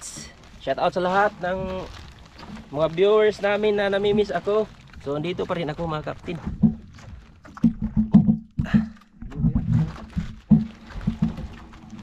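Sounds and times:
net knocking on boat side: 0:06.4 - 0:08.8.

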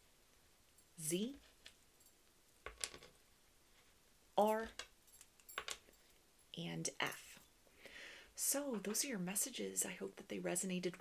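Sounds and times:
woman speaking: 0:01.0 - 0:01.4, 0:04.4 - 0:04.8, 0:06.6 - 0:07.4, 0:08.4 - 0:11.0
wooden tiles clicking on table: 0:02.6 - 0:03.1, 0:04.6 - 0:05.9.

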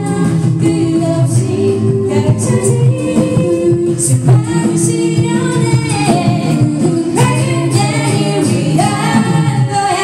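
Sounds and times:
a cappella group singing: 0:00.0 - 0:10.0
vocal percussion beat: 0:00.0 - 0:10.0.

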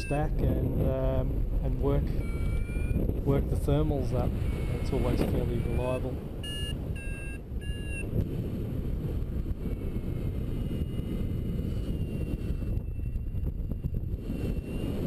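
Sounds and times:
variometer beeps: 0:00.0 - 0:00.6, 0:02.1 - 0:03.2, 0:04.4 - 0:08.2, 0:12.0 - 0:15.0
wind rushing over microphone: 0:00.0 - 0:15.0.

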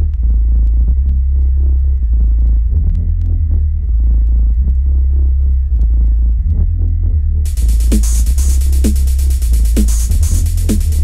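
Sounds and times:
deep bass drone: 0:00.0 - 0:11.0
pulsing low synth tones: 0:00.0 - 0:11.0.

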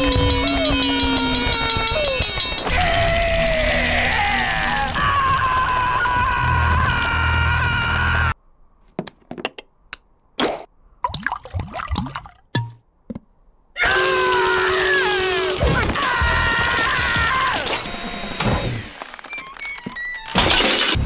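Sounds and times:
cartoon dog screaming: 0:00.0 - 0:08.3, 0:13.8 - 0:17.8.

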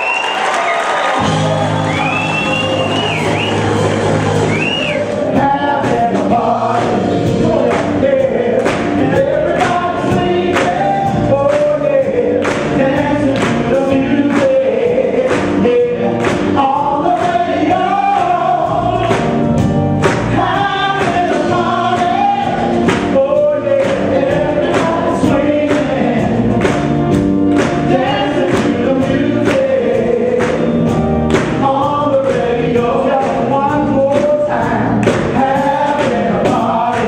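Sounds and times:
soul band with drum beat: 0:00.0 - 0:37.0
men singing in harmony: 0:04.5 - 0:26.8, 0:27.5 - 0:37.0.

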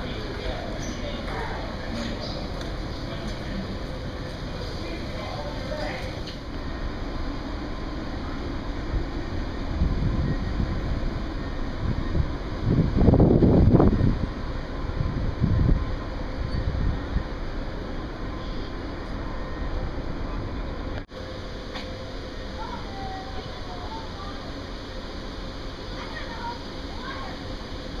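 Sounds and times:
wind buffeting microphone: 0:07.2 - 0:19.0.

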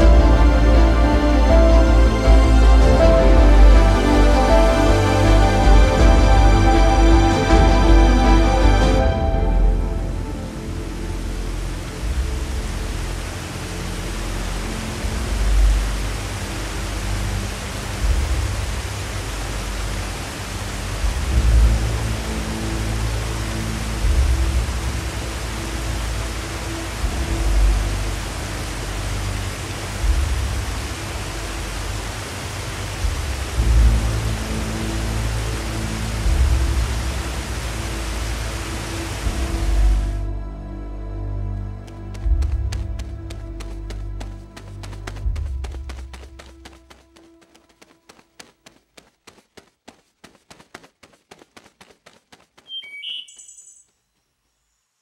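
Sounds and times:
waterfall rushing: 0:00.0 - 0:40.3
low bass music: 0:00.0 - 0:47.2.

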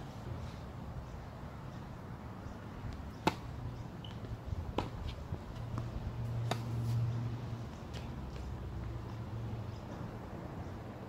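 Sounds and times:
outdoor background noise: 0:00.0 - 0:11.0
tennis racket hitting ball: 0:03.2 - 0:03.5, 0:05.8 - 0:06.9.

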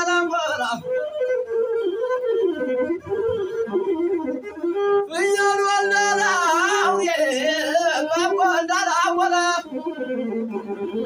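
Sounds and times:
bowed fiddle melody: 0:00.0 - 0:11.0
man singing: 0:05.1 - 0:10.0.

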